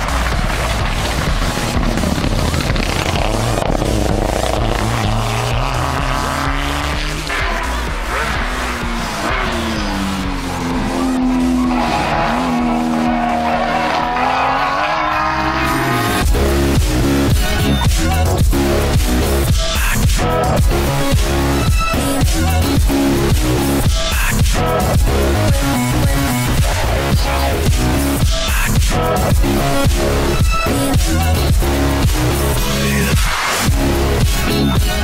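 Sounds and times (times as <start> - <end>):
car engine revving: 0.0 - 35.0
electronic dance music: 0.0 - 35.0.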